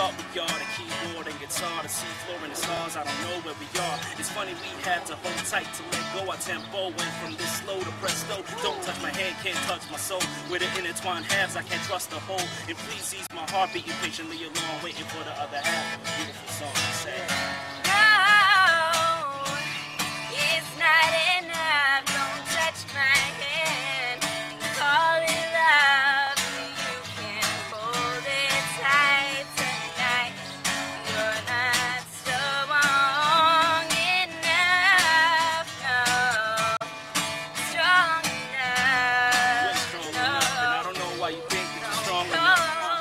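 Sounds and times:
acoustic guitar strumming: 0.0 - 43.0
woman singing: 17.8 - 36.9, 37.6 - 40.9, 42.2 - 43.0.

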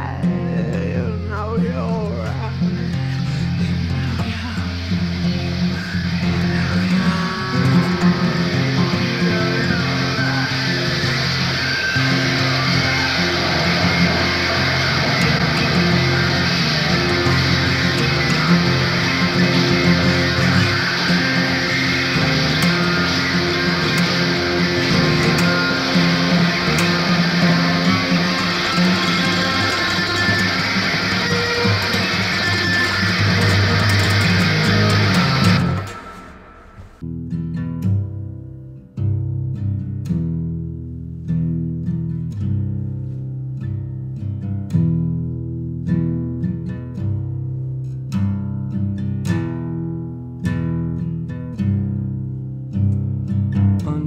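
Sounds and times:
clean guitar picked notes: 0.0 - 54.0
strummed electric guitar with bass: 0.0 - 54.0.

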